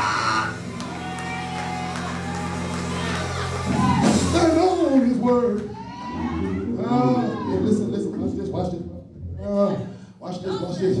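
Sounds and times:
preacher shouting: 0.0 - 7.9.

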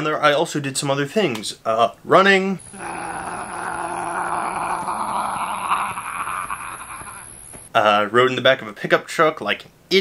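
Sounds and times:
thin high whine: 2.6 - 7.8.

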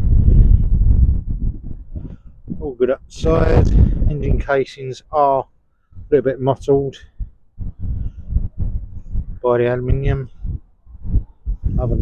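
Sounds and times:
microphone buffeting thuds: 0.0 - 4.6, 5.9 - 12.0.

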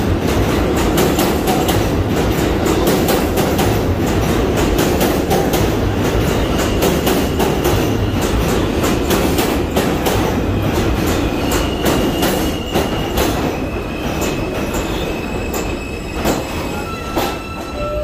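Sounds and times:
subway train rumble: 0.0 - 18.0
high wheel squeal: 10.5 - 18.0.

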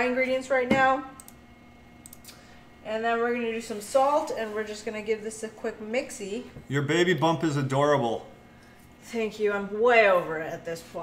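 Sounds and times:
faint short clicks: 2.0 - 2.4.

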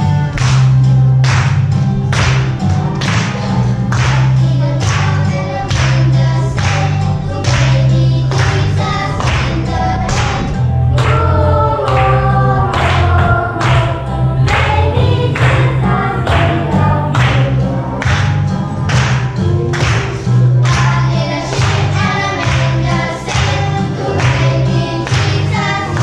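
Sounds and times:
backing track with strong bass: 0.0 - 26.0
children singing: 3.5 - 18.1, 20.6 - 26.0.

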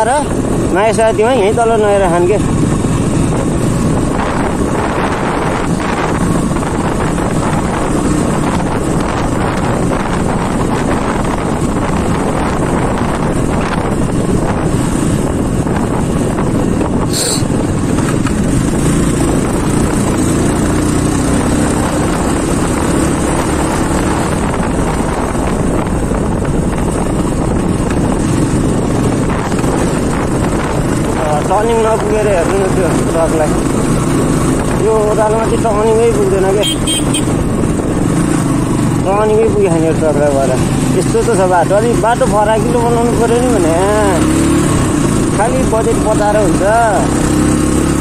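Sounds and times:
motorcycle engine running: 0.0 - 48.0
wind buffeting microphone: 0.0 - 48.0.

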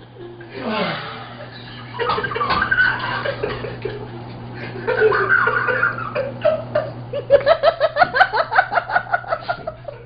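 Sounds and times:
man laughing hard: 0.6 - 10.0.

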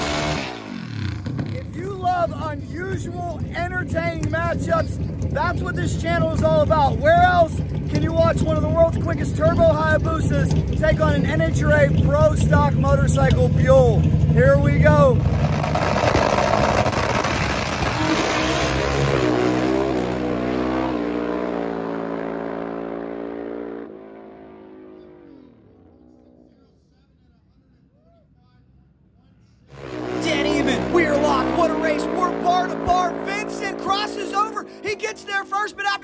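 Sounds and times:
motorcycle engines accelerating: 0.0 - 26.5, 29.7 - 36.0.

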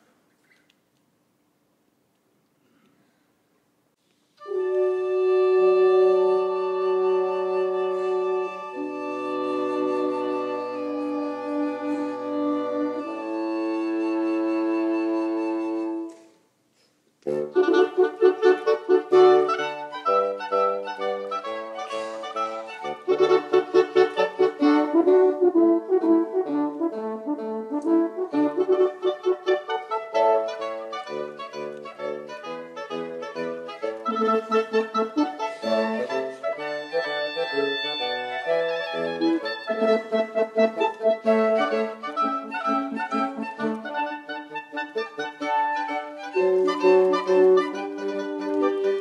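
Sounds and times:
woodwind quintet playing: 4.4 - 16.3, 17.2 - 49.0.

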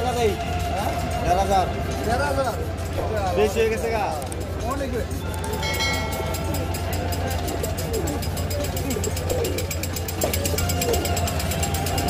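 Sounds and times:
faint voices: 0.0 - 12.0
steady high tone: 5.1 - 8.3.

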